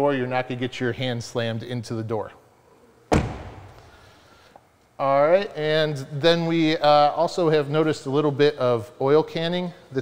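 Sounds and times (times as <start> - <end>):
car door slamming: 3.1 - 3.8.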